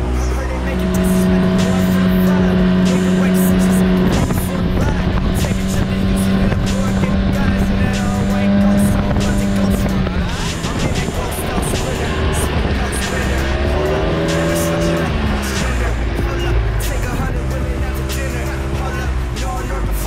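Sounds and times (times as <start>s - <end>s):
tyres on dirt and gravel: 0.0s - 20.0s
vehicle engine droning: 0.0s - 20.0s.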